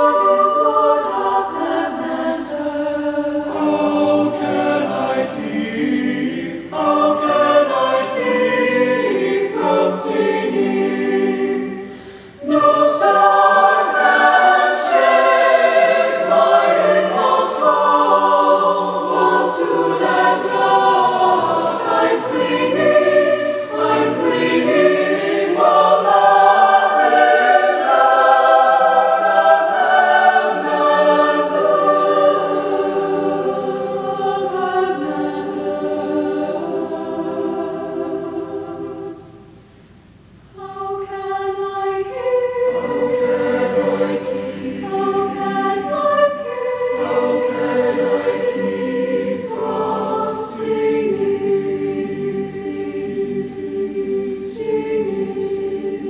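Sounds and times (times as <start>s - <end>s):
choir singing: 0.0s - 39.8s, 40.6s - 56.0s.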